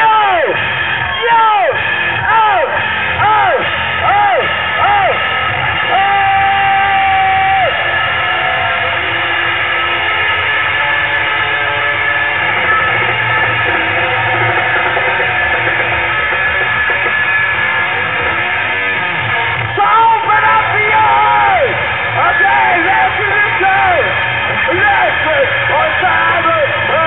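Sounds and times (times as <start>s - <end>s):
distorted guitar pitch bends: 0.0s - 27.0s
live garage rock band: 0.0s - 27.0s.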